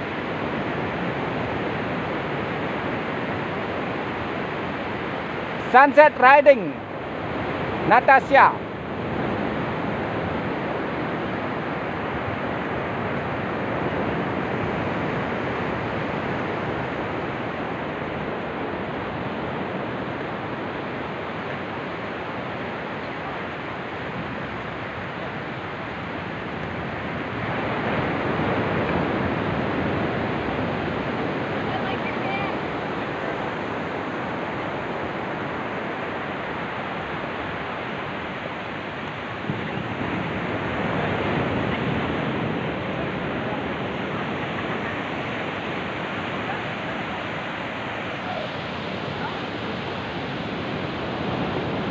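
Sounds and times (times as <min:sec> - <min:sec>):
ocean surf rushing: 0:00.0 - 0:51.9
wind buffeting microphone: 0:08.6 - 0:51.9.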